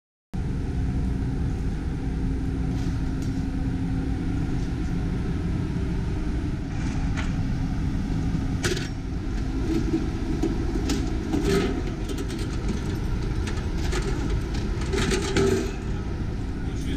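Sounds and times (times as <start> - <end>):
faint steady hum: 0.4 - 16.9
low rumble of ship deck: 0.4 - 16.9.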